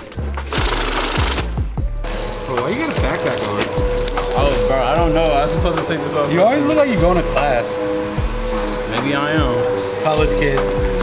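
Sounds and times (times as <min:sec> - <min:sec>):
bill counter riffling banknotes: 0:00.0 - 0:04.8
music with steady bass beat: 0:00.0 - 0:11.0.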